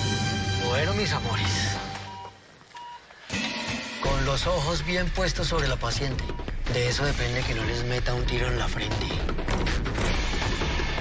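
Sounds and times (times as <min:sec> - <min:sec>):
background music: 0:00.0 - 0:02.5, 0:03.2 - 0:11.0
patient monitor beeps: 0:01.5 - 0:03.0, 0:04.6 - 0:06.6.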